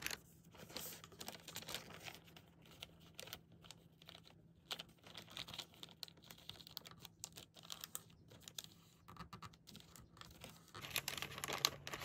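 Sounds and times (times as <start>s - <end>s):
paper bag crinkling: 0.0s - 8.6s, 9.7s - 12.0s.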